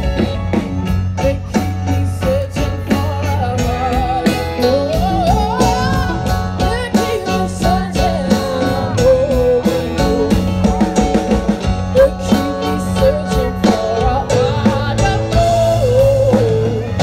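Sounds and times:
drum kit beat: 0.0s - 17.0s
electric guitars: 0.0s - 17.0s
keyboard: 0.0s - 17.0s
woman singing: 1.1s - 10.7s, 11.8s - 17.0s.

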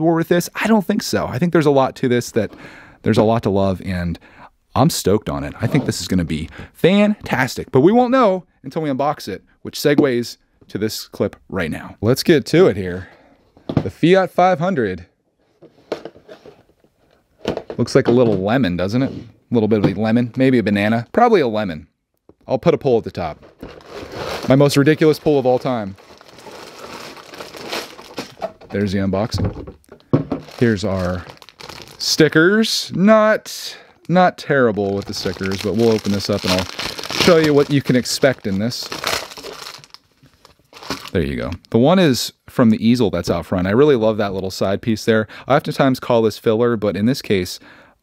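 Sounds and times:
plastic sleeve crinkling: 23.1s - 29.4s, 30.0s - 32.4s, 33.9s - 41.6s.

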